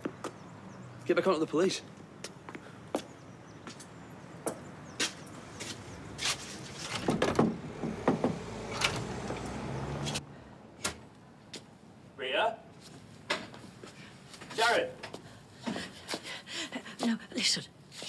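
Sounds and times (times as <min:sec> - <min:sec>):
street background noise: 0:00.0 - 0:18.0
vehicle going by: 0:04.8 - 0:10.7
shop door clicks and knocks: 0:06.9 - 0:09.1.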